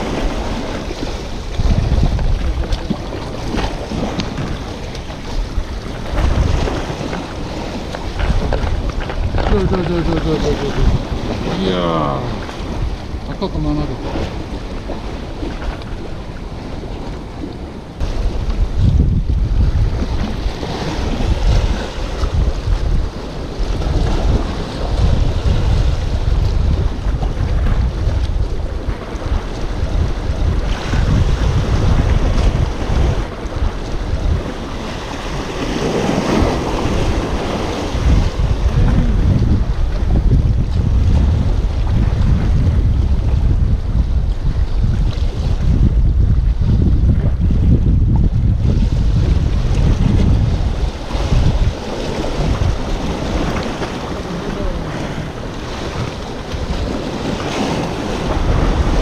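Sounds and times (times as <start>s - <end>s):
sea waves against rocks: 0.0s - 59.0s
wind buffeting microphone: 0.0s - 59.0s.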